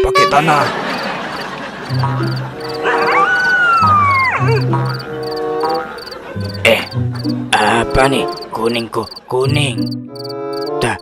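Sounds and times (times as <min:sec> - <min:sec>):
insect chirps: 0:00.9 - 0:03.6, 0:04.5 - 0:07.3, 0:08.3 - 0:10.8
comic whistle gliding down: 0:02.8 - 0:04.6
background music with low notes: 0:03.8 - 0:11.0.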